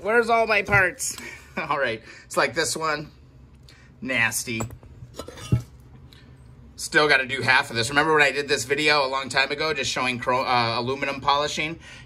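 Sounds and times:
metal cover clinking: 4.6 - 5.7.

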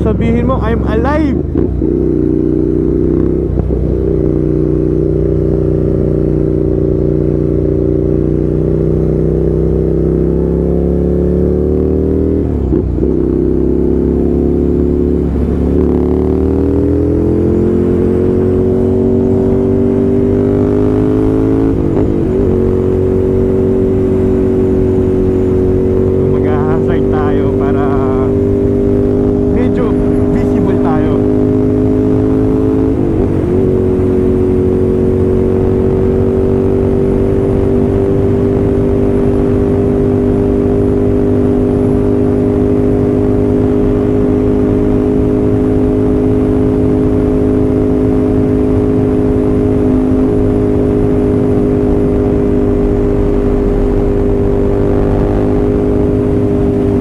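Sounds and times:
low wind rumble: 0.0 - 57.0
motorcycle engine cruising: 0.0 - 57.0.

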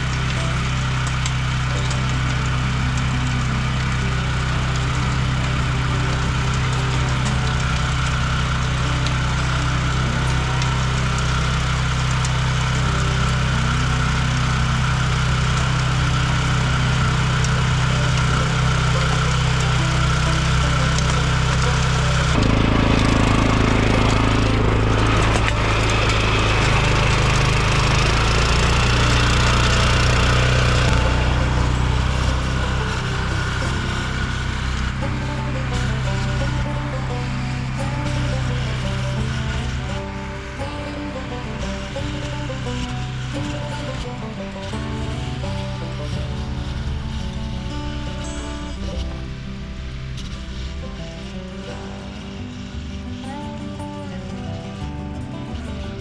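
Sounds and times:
tiller engine running: 0.0 - 56.0
tines churning soil: 0.0 - 56.0.

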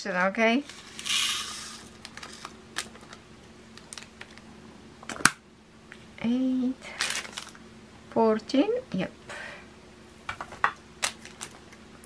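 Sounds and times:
plastic beads pouring: 0.9 - 1.9.

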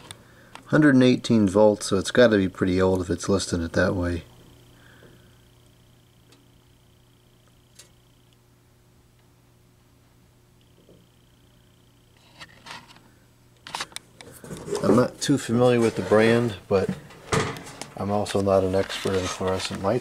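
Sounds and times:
faint low hum: 0.0 - 20.0.

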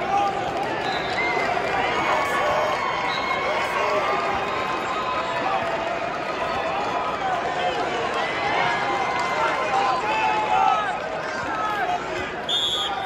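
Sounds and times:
crowd hubbub: 0.0 - 13.0.

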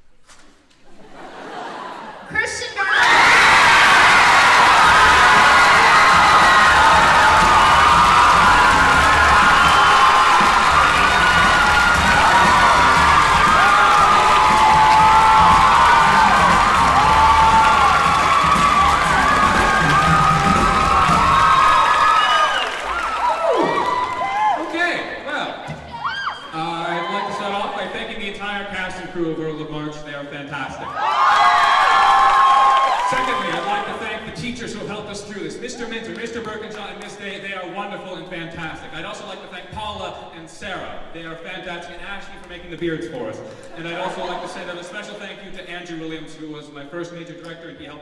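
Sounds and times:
audience cheering and shouting: 2.6 - 28.2, 30.8 - 34.0
audience clapping: 3.0 - 24.9, 31.0 - 34.0.

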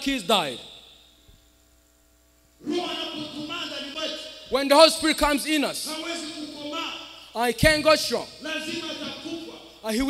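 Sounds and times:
man speaking into a microphone: 0.0 - 0.8, 2.6 - 10.0
sound system electrical hum: 0.0 - 10.0.

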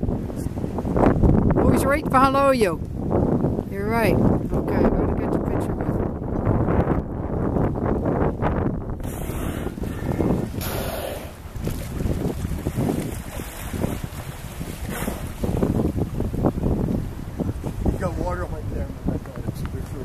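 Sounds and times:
wind buffeting microphone: 0.0 - 20.0
water splashing: 9.0 - 18.2.

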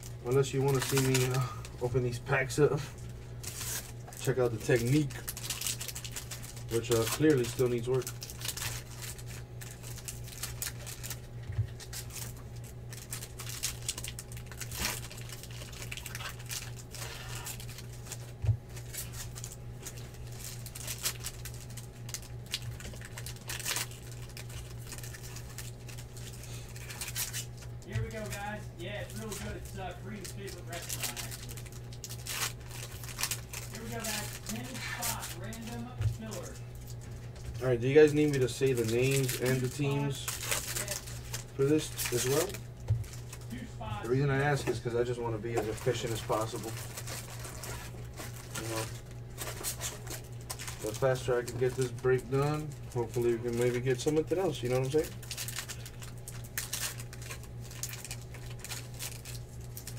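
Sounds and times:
foil wrappers tearing and crinkling: 0.0 - 59.9
steady low hum: 0.0 - 59.9.

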